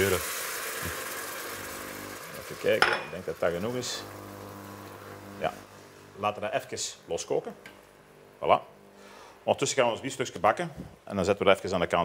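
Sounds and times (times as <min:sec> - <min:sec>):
food sizzling in a pot: 0:00.0 - 0:06.2.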